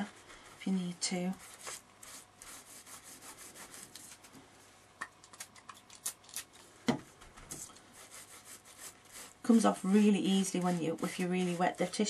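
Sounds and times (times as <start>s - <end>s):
paper towel wiping plastic sheet: 8.0s - 12.0s.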